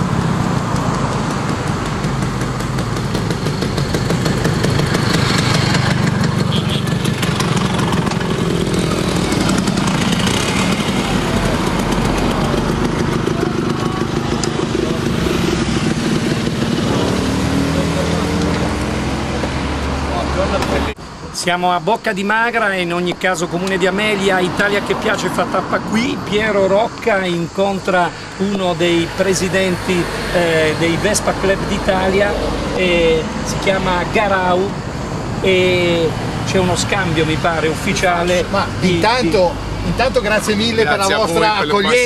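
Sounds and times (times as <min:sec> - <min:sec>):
motor scooter engines buzzing: 0:00.0 - 0:21.3, 0:22.3 - 0:42.0
voices: 0:10.0 - 0:42.0.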